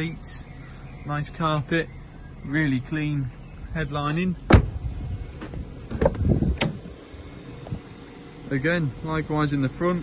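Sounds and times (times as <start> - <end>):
car door handle and latch click: 5.4 - 6.8.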